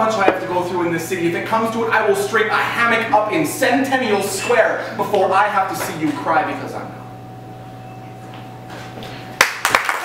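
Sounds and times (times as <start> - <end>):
steady hum: 0.0 - 9.4
audience applause: 9.4 - 10.0.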